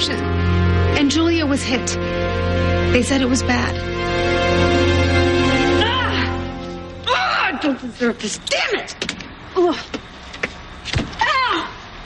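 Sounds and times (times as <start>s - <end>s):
woman wailing in distress: 5.6s - 7.6s.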